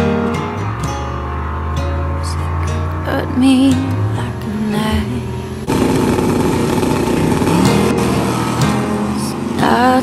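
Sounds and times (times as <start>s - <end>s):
song playing: 0.0s - 10.0s
drag car engines at full throttle: 0.1s - 10.0s.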